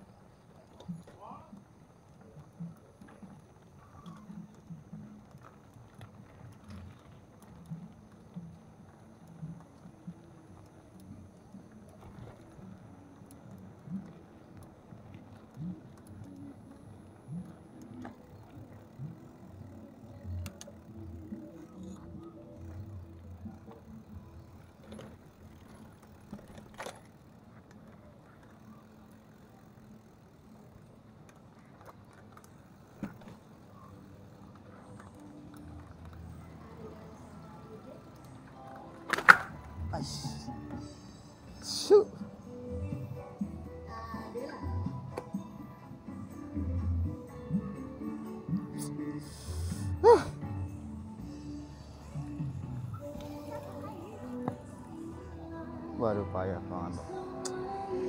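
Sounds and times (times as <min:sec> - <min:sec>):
bicycle tyres rumbling on dirt: 0:00.0 - 0:40.3
bike rattling and knocking: 0:18.0 - 0:36.3.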